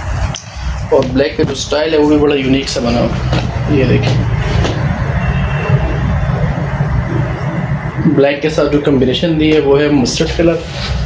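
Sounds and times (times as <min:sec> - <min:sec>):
heavy low rumble: 0:00.0 - 0:10.5.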